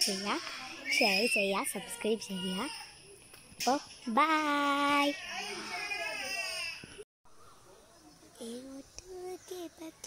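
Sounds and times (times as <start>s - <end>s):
faint background sound: 0.0s - 10.0s.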